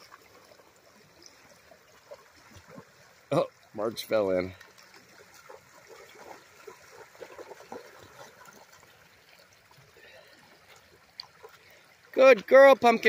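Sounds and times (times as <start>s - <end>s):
dogs splashing through water: 0.0s - 12.5s
shallow river water trickling: 0.0s - 13.0s.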